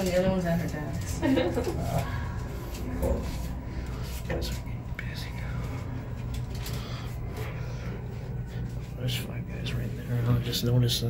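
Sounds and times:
elevator hum: 0.0s - 11.0s
faint voices: 0.0s - 11.0s.

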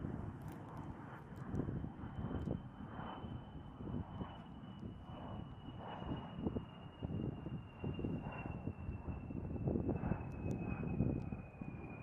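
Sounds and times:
turboprop aircraft landing: 0.0s - 12.0s.

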